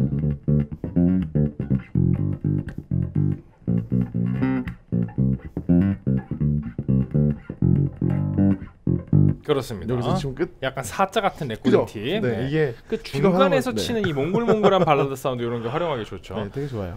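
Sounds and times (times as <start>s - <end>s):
bass guitar plucked fingerstyle: 0.0s - 10.3s.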